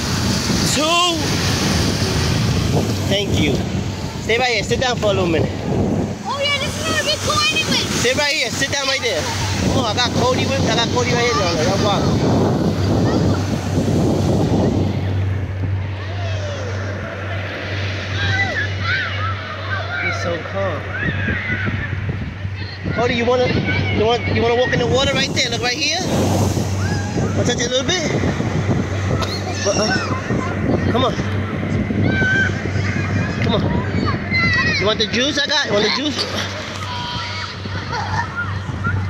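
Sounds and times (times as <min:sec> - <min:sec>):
faint voices: 0:00.0 - 0:39.0
ocean surf breaking: 0:00.0 - 0:39.0
wind buffeting microphone: 0:00.0 - 0:39.0.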